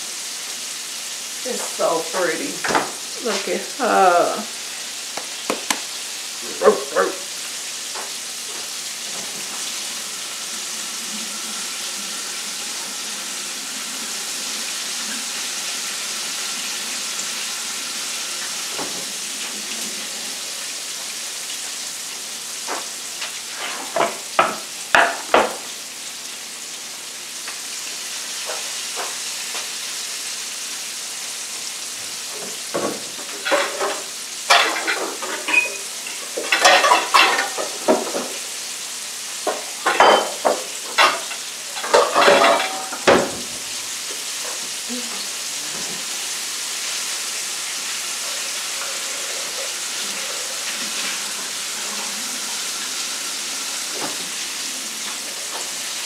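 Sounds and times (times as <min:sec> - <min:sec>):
food sizzling in a frying pan: 0:00.0 - 0:56.0.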